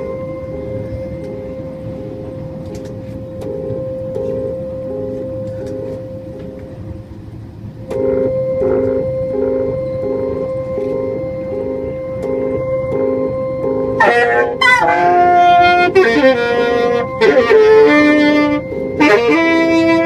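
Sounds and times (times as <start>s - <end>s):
small keyboard instrument playing: 0.0s - 20.0s
train rumble: 0.0s - 20.0s.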